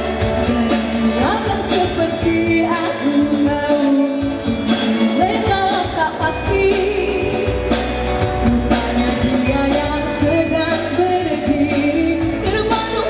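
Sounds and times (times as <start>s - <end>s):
bass: 0.0s - 13.0s
drums: 0.0s - 13.0s
woman singing into a microphone: 0.0s - 13.0s.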